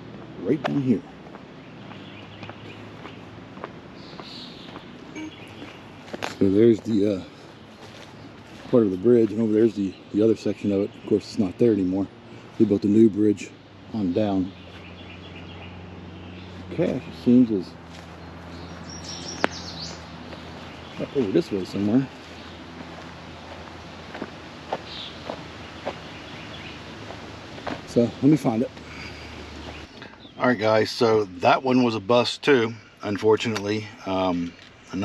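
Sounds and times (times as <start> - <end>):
footsteps on outdoor trail: 0.0 - 13.1, 13.8 - 30.6
songbird chirping: 0.0 - 35.0
steady low hum: 0.0 - 35.0.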